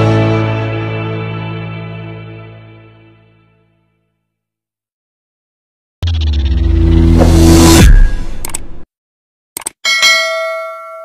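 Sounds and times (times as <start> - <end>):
quick clicks: 8.4 - 8.8, 9.6 - 9.8
bright bell chime: 9.8 - 11.0.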